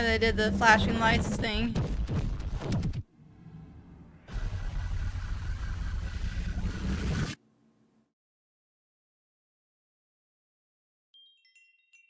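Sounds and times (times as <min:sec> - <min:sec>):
loud rushing rumbling noise: 0:02.7 - 0:07.3.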